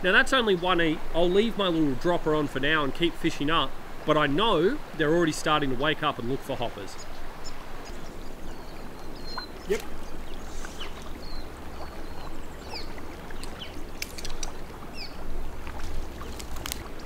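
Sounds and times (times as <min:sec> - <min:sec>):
river water running: 0:00.0 - 0:17.0
bird chirps: 0:06.9 - 0:15.2
sharp clicks: 0:13.4 - 0:14.6.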